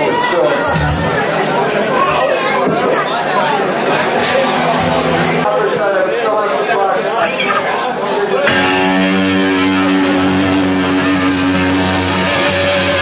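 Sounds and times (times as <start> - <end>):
crowd chatter: 0.0 - 13.0
electric guitar held chord: 4.2 - 5.6, 8.4 - 13.0.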